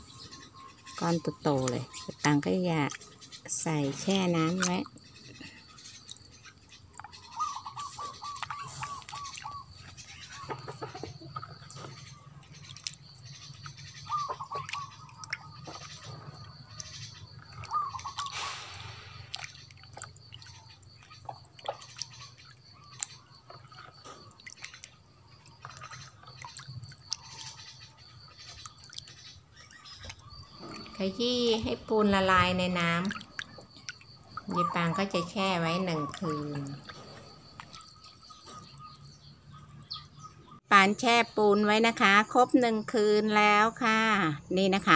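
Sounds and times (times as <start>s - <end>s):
water splashing and sloshing: 0.0s - 40.6s
bird calling: 0.0s - 40.7s
hand stirring water in basin: 7.0s - 38.1s.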